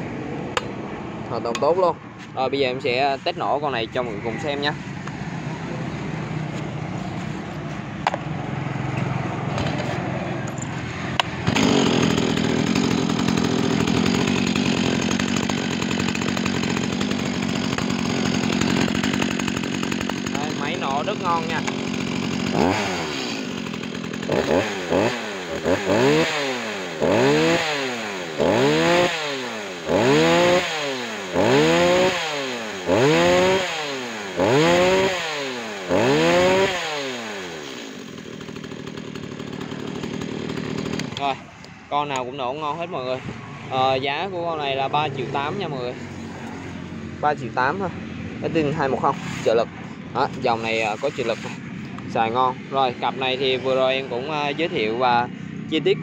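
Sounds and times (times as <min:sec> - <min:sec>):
chainsaw idling and revving: 0:00.1 - 0:02.2, 0:02.8 - 0:56.0.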